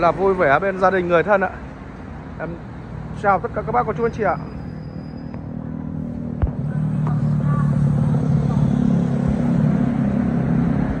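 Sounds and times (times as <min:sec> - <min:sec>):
engine humming: 0:00.0 - 0:11.0.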